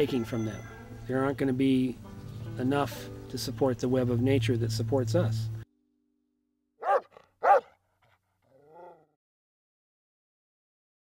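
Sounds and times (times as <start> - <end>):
dog barking: 6.8 - 7.8.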